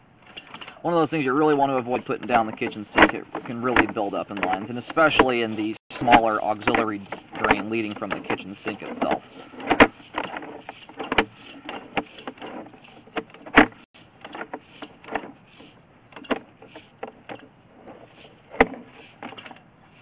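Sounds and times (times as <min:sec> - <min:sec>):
cable clicking and knocking in pipe: 0:01.4 - 0:15.4.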